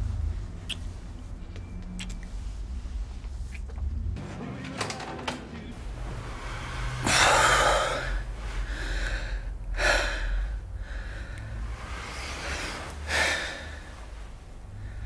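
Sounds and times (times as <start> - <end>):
man breathing heavily: 6.1 - 15.0
woman breathing heavily: 6.1 - 15.0.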